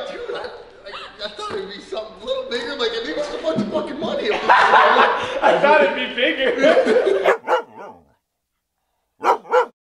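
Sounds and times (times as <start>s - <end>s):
dog barking: 7.2s - 8.1s, 9.2s - 9.8s.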